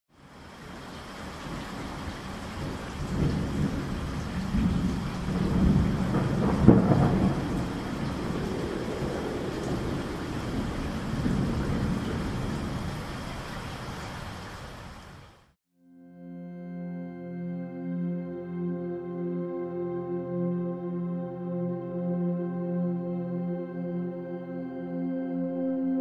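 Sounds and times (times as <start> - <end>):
steady rain: 0.1 - 15.6
rolling thunder: 1.4 - 14.3.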